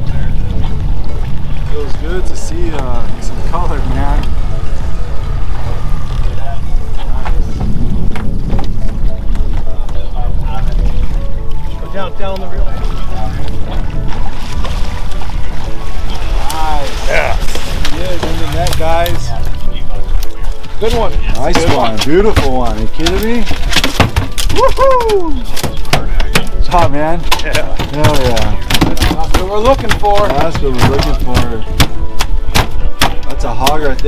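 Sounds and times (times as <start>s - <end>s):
boat engine rumble: 0.0s - 34.0s
wind on microphone: 0.0s - 34.0s.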